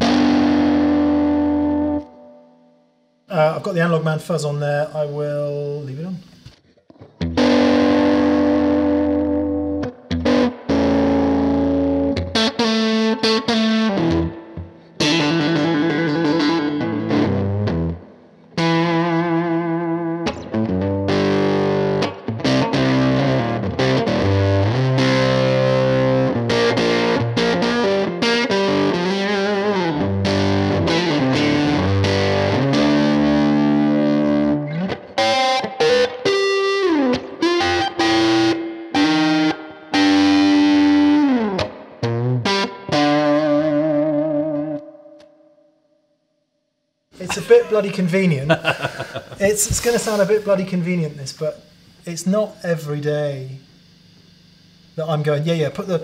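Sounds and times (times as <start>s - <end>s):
fuzzy electric guitar: 0.0s - 45.7s, 47.2s - 56.0s.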